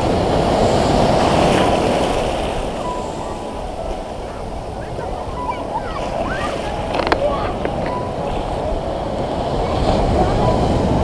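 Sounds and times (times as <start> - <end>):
sea surf breaking: 0.0 - 11.0.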